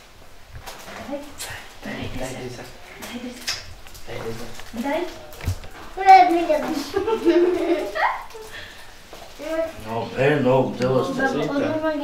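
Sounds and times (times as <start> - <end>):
people talking: 4.1 - 8.4, 9.4 - 12.0.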